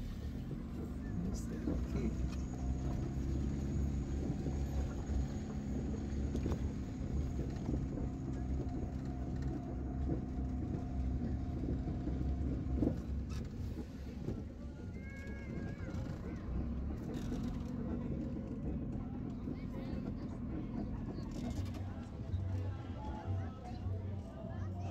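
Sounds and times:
car engine and road rumble: 0.0s - 24.9s.

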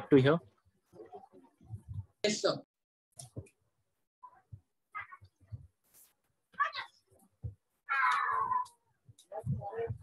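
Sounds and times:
high-pitched cry: 7.9s - 8.7s.

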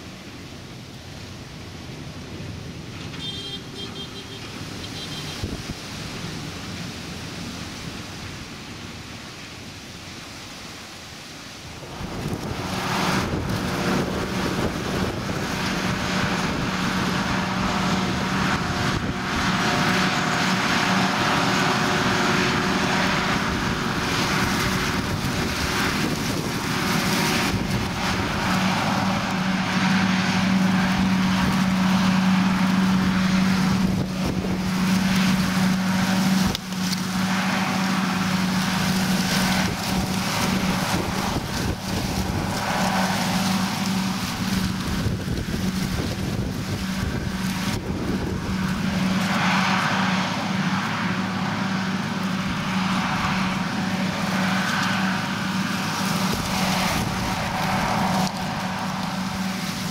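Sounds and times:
tractor passing: 0.0s - 59.9s
forage harvester chopping: 11.8s - 59.9s.

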